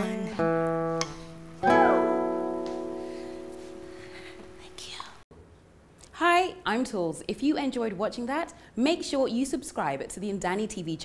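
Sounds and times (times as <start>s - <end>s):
acoustic guitar chord ringing: 0.0s - 4.8s
breathy whisper: 4.0s - 5.2s.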